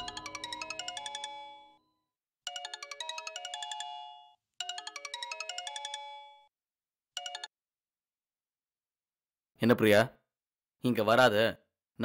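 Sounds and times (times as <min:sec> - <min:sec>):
phone ringtone chiming melody: 0:00.0 - 0:06.6, 0:07.2 - 0:07.6.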